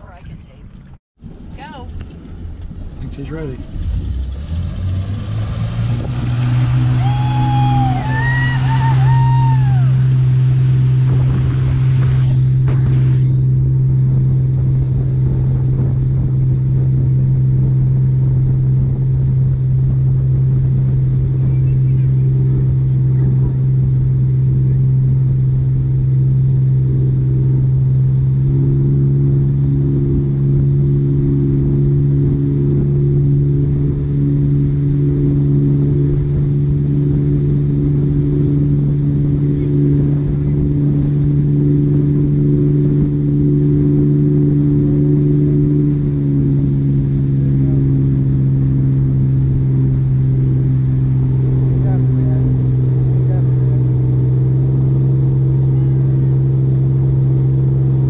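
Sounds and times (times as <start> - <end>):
motorboat engine droning: 0.0 - 58.0.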